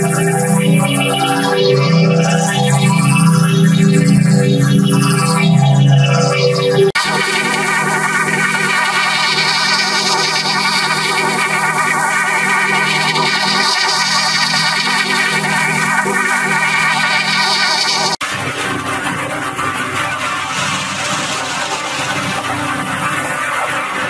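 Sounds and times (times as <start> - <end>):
buzzing warbling electronic chord: 0.0 - 24.0.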